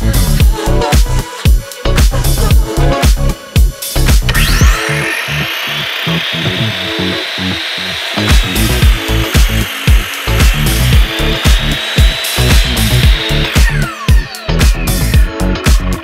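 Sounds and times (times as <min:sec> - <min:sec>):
background music with steady beat: 0:00.0 - 0:16.0
power tool whining on wood: 0:03.8 - 0:16.0.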